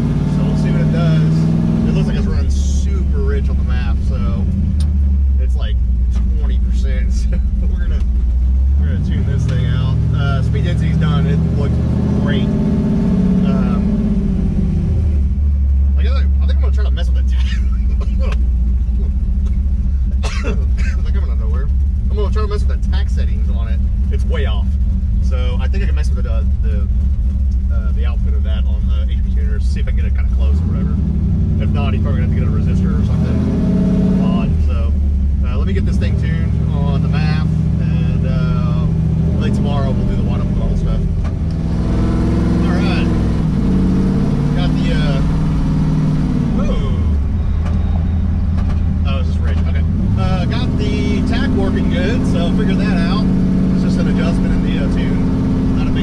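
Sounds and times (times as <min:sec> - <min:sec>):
truck engine revving: 0:00.0 - 0:56.0.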